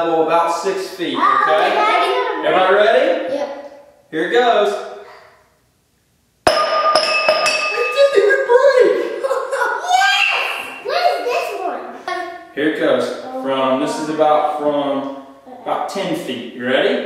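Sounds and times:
children's excited voices: 1.0s - 3.8s, 8.0s - 12.5s, 13.2s - 14.6s
glass hitting floor with clink: 6.5s - 8.1s
glass rattling as it settles: 6.5s - 8.1s.

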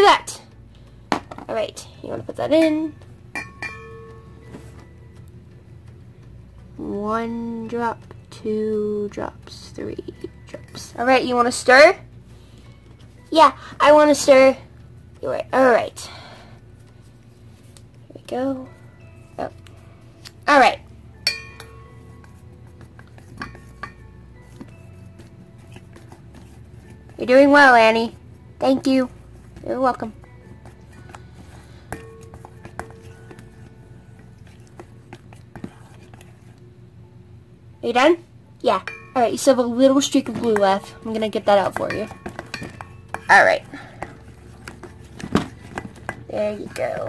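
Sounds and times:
utensil clinking against metal bowl: 2.5s - 4.6s, 21.2s - 28.1s, 28.8s - 36.4s, 38.7s - 47.0s
metal bowl ringing: 2.5s - 5.2s, 21.1s - 26.1s, 29.9s - 34.4s, 38.7s - 44.8s.

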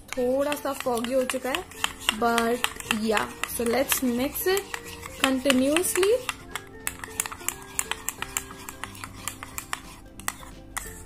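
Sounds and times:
light background music: 0.0s - 11.0s
teaspoon clicking against plastic bowl: 0.1s - 10.9s.

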